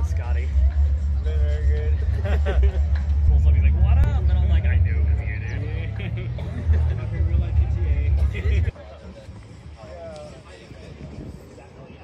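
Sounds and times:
people talking: 0.0 - 12.0.

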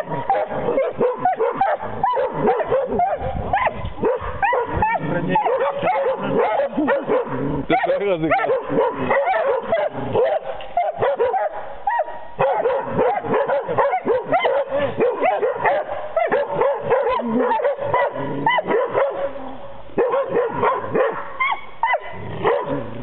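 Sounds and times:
dogs barking and yipping: 0.0 - 23.0.

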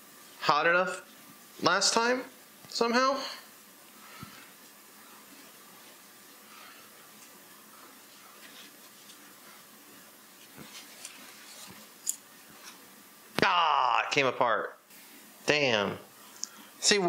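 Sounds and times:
paper towel rustling: 3.8 - 12.9.

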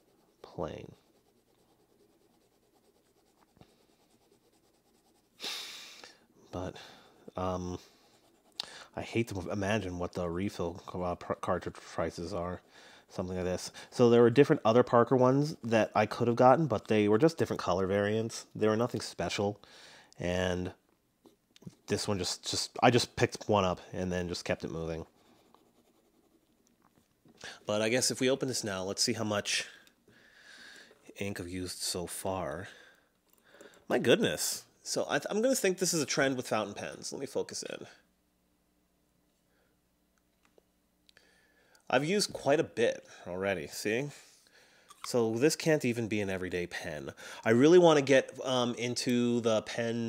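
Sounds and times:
pen nib scratching paper: 0.0 - 5.4, 25.1 - 26.6.

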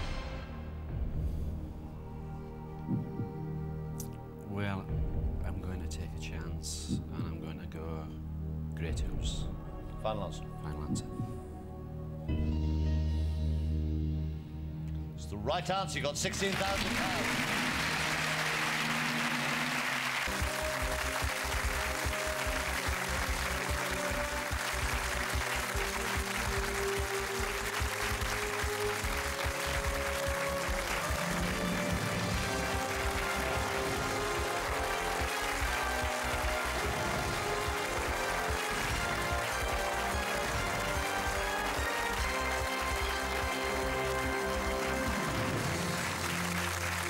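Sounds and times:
theme music with low beat: 0.0 - 47.0
studio audience applause: 16.2 - 47.0.

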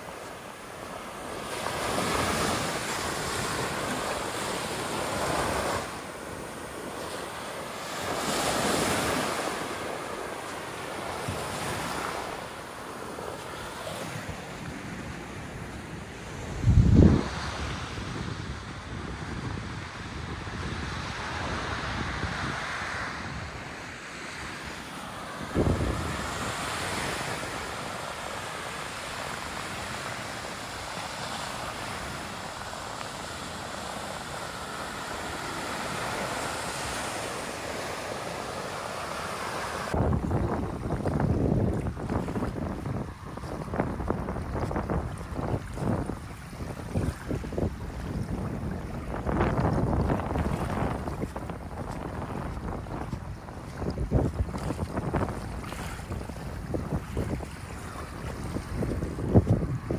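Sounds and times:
surf washing up beach: 0.0 - 59.9.

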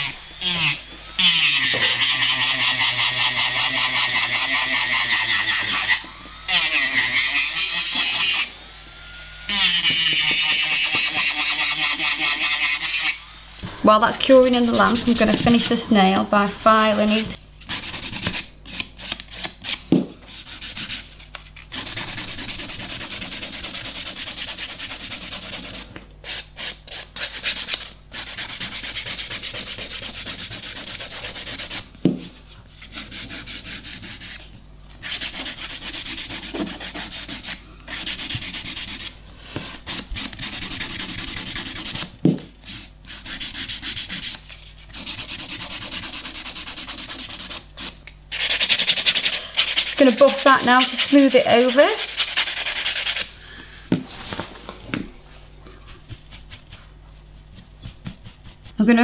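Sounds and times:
nail file rubbing on nail: 14.4 - 15.8, 20.3 - 39.1, 39.7 - 53.3, 56.0 - 58.9.

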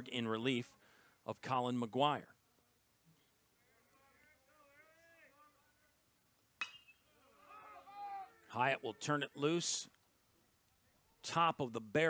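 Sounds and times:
faint distant voices: 3.5 - 6.3
metal bat pinging a ball: 6.6 - 7.0.

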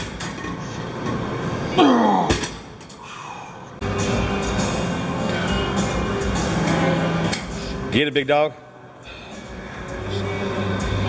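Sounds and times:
man groaning with strain: 1.7 - 2.4.

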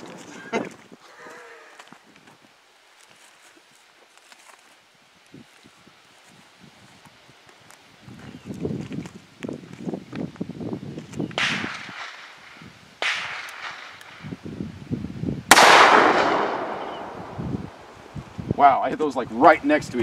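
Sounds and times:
revolver gunshots with echo: 11.4 - 12.4, 13.0 - 14.1, 15.5 - 17.4.

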